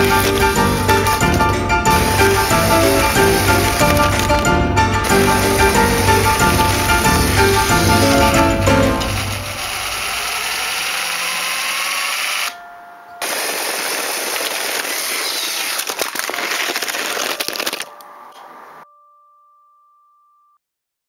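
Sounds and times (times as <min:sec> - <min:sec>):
toy train rattling on track: 0:00.0 - 0:12.6, 0:13.2 - 0:18.0.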